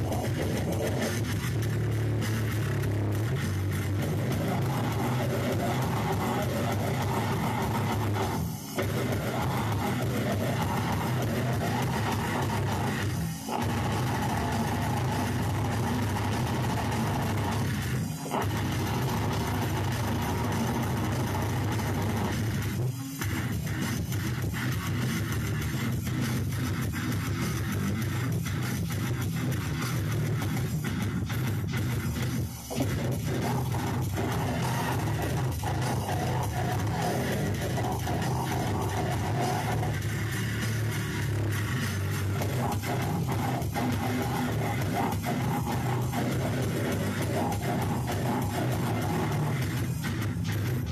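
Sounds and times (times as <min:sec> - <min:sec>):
distorted guitars and bass: 0:00.0 - 0:50.9
drums: 0:00.0 - 0:50.9.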